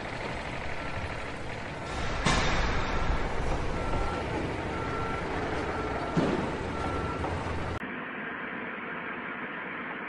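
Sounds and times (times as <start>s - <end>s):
continuous rumbling noise: 0.0s - 10.0s
backup alarm beeping: 1.9s - 7.8s.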